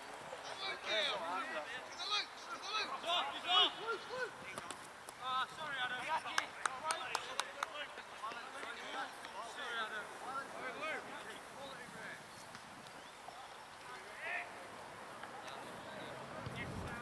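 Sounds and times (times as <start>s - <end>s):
quick run of sharp clicks: 4.5s - 5.2s.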